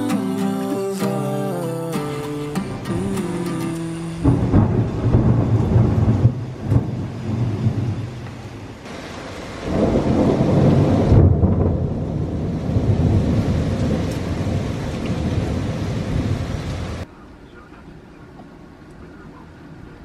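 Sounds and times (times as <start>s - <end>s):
heavy rain: 0.0s - 20.0s
thunder rumbling: 2.7s - 17.1s.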